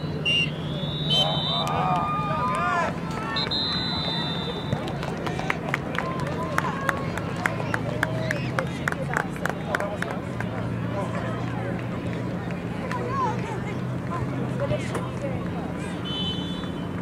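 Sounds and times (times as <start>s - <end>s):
people calling out: 0.2s - 5.4s.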